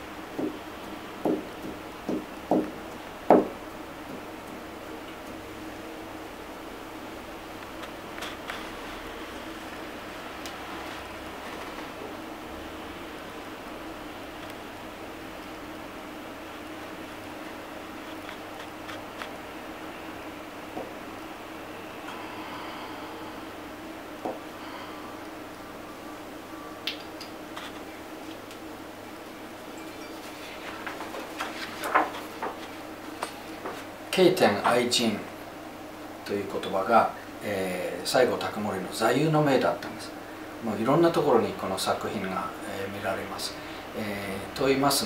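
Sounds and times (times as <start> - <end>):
background hiss: 0.0 - 45.0
faint low hum: 0.0 - 45.0
paper rustling: 30.2 - 33.9.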